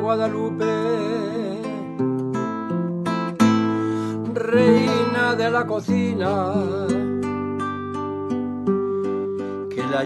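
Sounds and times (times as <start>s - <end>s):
person singing: 0.0s - 2.0s, 4.1s - 7.5s, 9.0s - 10.0s
acoustic guitar strumming chords: 0.0s - 10.0s.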